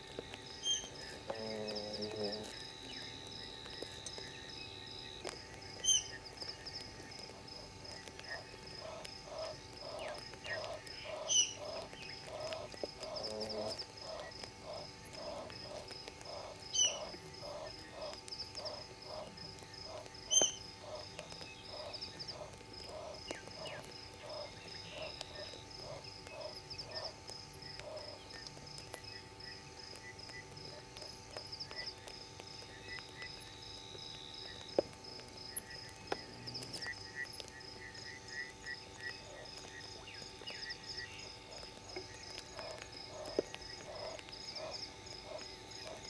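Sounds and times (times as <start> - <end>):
high insect trill: 0.0 - 46.0
frog calling in low pulses: 0.6 - 3.0, 7.9 - 27.2.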